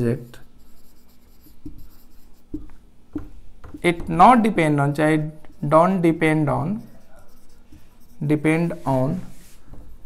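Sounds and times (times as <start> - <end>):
person speaking: 0.0 - 9.7
faint low hiss: 0.0 - 10.0
marker scratching on whiteboard: 0.3 - 10.0.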